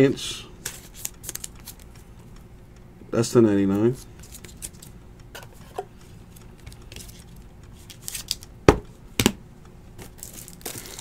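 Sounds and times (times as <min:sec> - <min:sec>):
cards rustling: 0:00.6 - 0:02.1, 0:03.9 - 0:04.9, 0:06.6 - 0:08.5, 0:10.0 - 0:11.0.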